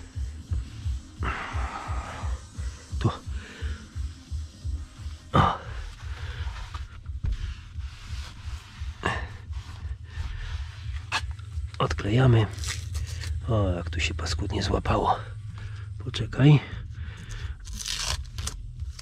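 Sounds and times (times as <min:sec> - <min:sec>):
background music with pulsing beat: 0:00.0 - 0:12.2.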